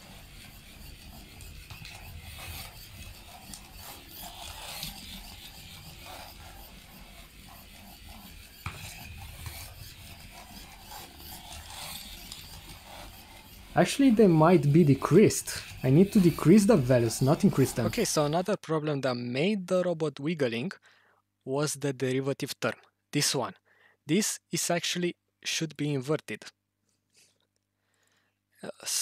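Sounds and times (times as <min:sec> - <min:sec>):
small gear motors running: 0:00.0 - 0:18.4.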